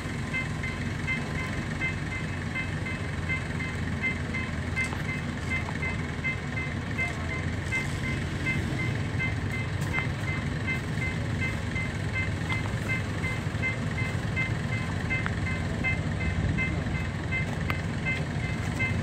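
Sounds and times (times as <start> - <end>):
level crossing alarm beeping: 0.0 - 19.0.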